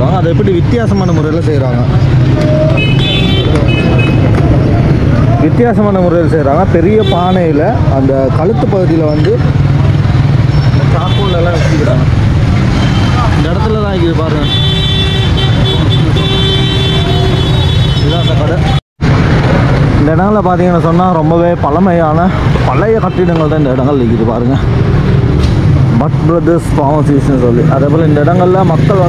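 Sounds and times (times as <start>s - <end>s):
traffic engine rumble: 0.0s - 29.0s
vehicle horn tooting: 2.7s - 4.3s, 14.4s - 18.8s.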